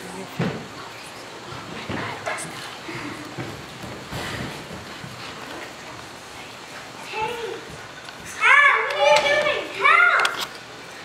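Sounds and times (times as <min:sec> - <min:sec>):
children calling out: 0:07.1 - 0:10.6.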